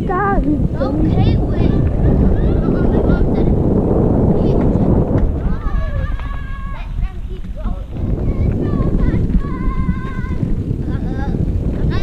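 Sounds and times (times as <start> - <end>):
bike tyres rumbling on dirt: 0.0 - 12.0
wind on microphone: 0.0 - 12.0.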